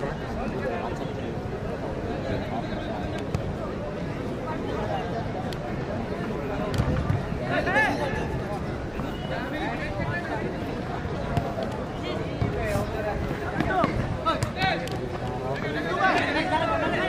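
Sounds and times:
people calling out and chattering: 0.0 - 17.0.

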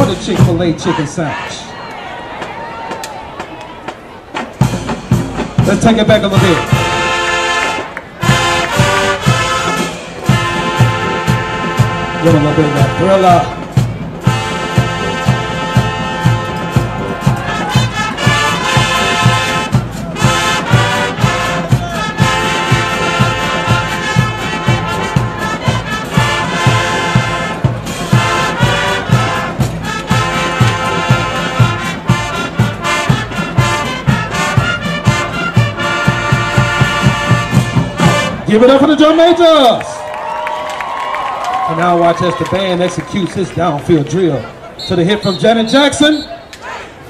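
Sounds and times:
steady drum beat: 0.0 - 1.1, 2.4 - 39.2
marching band playing: 0.0 - 46.2
brass carrying tune: 4.6 - 39.8.

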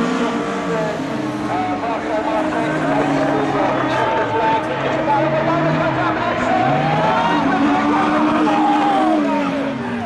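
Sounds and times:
race car engines passing: 0.0 - 10.0.

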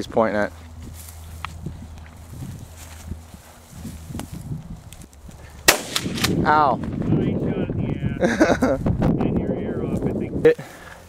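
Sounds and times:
soft scuffing: 0.4 - 5.5
shotgun shot: 5.7 - 6.4.

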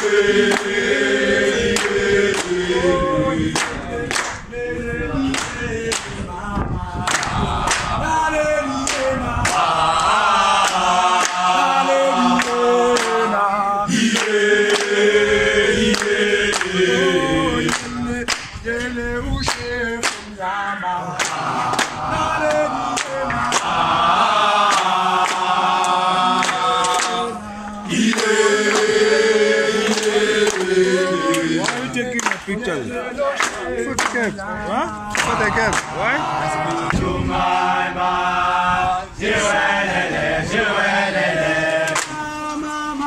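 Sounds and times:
boys singing a cappella: 0.0 - 43.0
young men chanting in unison: 0.0 - 43.0
hand clapping: 0.5 - 0.7, 1.7 - 2.6, 3.6 - 4.4, 5.3 - 6.2, 7.0 - 8.0, 8.8 - 11.5, 12.3 - 13.2, 14.1 - 15.0, 15.9 - 16.7, 17.7 - 18.9, 19.5 - 20.3, 21.2 - 23.7, 24.6 - 27.2, 28.0 - 29.0, 29.8 - 32.6, 33.4 - 34.4, 35.1 - 35.9, 41.8 - 42.6.

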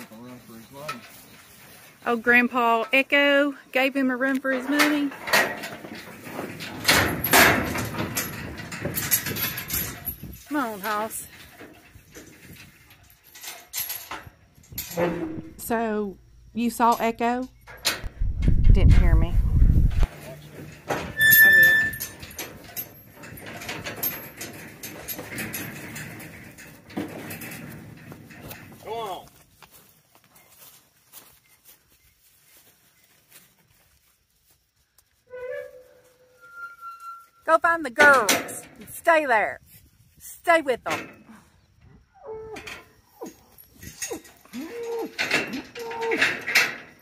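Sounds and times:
metal trailer clanking and rattling: 0.0 - 16.0, 16.6 - 29.2, 35.3 - 39.2, 40.6 - 41.5, 42.6 - 47.0
bull footsteps and shuffling: 0.0 - 47.0.

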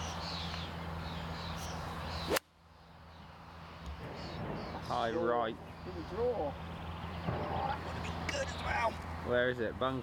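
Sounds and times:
birds chirping: 0.0 - 10.0
golf club swish: 1.6 - 2.5.

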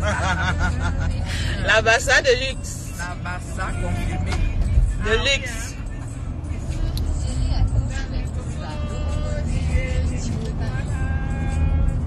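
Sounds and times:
car road and engine rumble: 0.0 - 12.0
music: 0.0 - 12.0.

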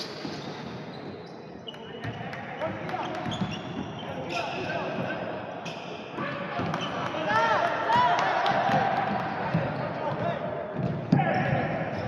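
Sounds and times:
sneakers squeaking on floor: 0.0 - 7.4
indistinct voices in gym: 0.0 - 12.0.

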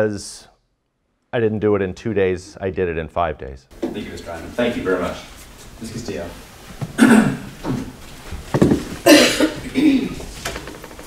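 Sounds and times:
person coughing: 7.0 - 7.6, 9.0 - 10.3.

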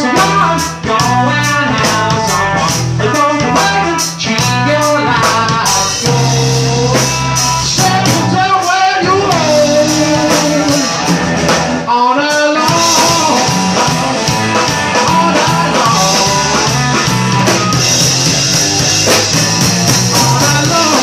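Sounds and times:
man singing: 0.0 - 11.2, 11.8 - 17.8, 19.5 - 21.0
drum kit: 0.0 - 21.0
electric guitar: 0.0 - 21.0.

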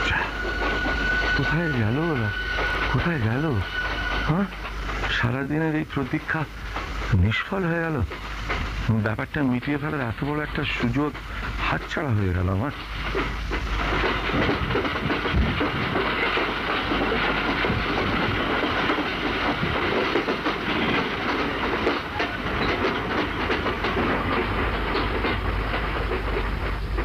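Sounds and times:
train hissing: 0.0 - 27.0
train wheels clattering on rails: 0.0 - 27.0.

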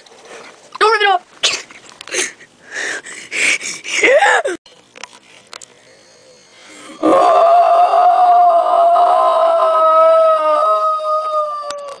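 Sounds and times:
long high-pitched howl: 5.7 - 12.0.

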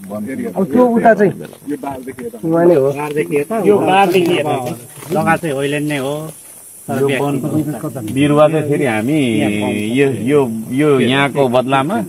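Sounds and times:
faint hiss: 0.0 - 12.0
men talking: 0.0 - 12.0.

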